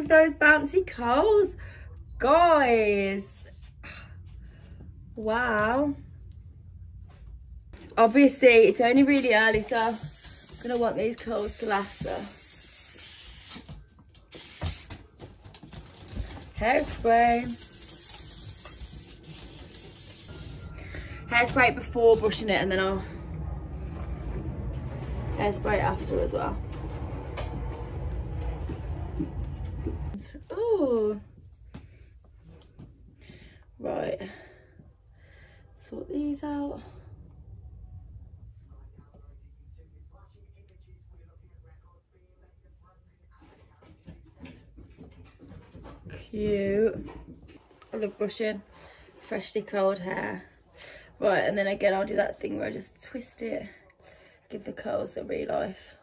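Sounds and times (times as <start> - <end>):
low room hum: 0.0 - 56.0
hairspray aerosol hissing: 9.6 - 13.7, 14.3 - 14.9, 17.3 - 20.7.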